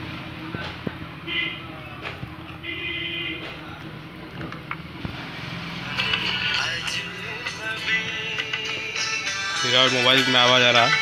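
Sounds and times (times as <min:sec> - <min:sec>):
music from phone: 0:05.8 - 0:11.0.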